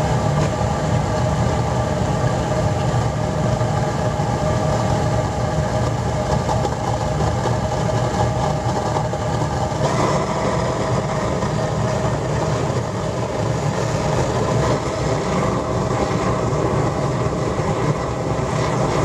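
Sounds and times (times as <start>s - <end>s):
oil burner rumbling: 0.0s - 19.0s.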